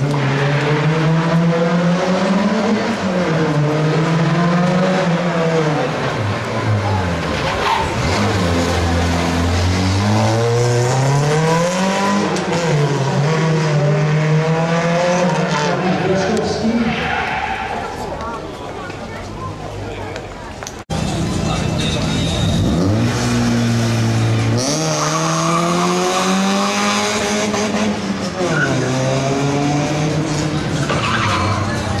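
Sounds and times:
rally car engine revving: 0.0 - 18.0, 20.9 - 32.0.

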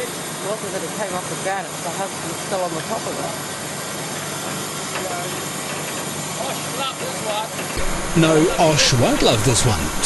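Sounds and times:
truck engine running: 7.8 - 10.0.

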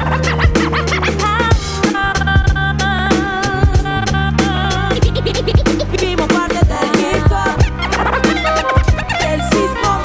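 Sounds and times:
hip hop beat: 0.0 - 10.0
record scratching: 1.8 - 10.0.

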